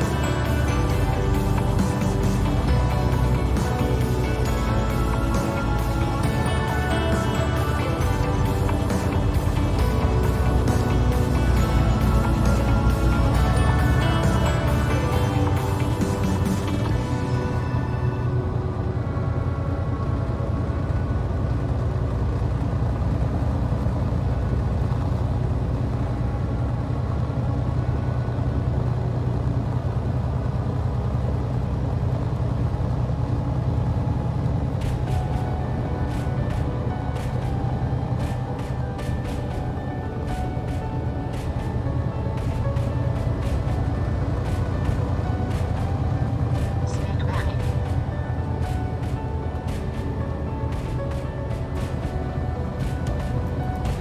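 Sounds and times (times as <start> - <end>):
background music with sustained tones: 0.0 - 54.0.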